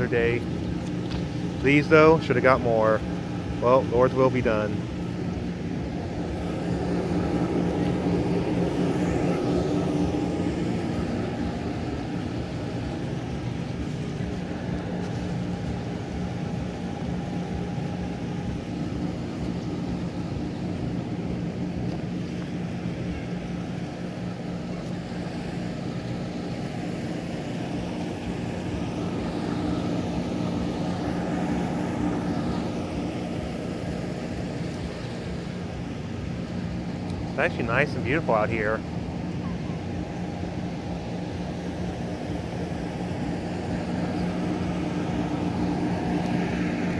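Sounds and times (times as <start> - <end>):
low mechanical hum: 0.0 - 46.9.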